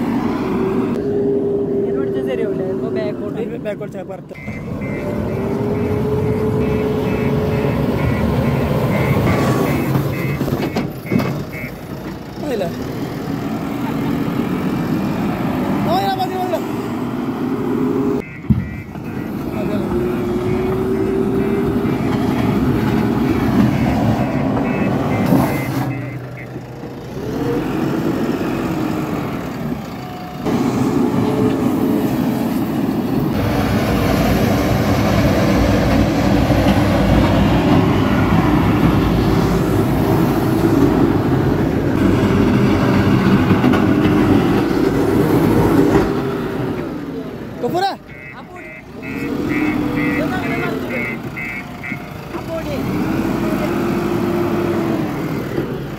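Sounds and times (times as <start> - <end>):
diesel engine under load: 0.0 - 55.9.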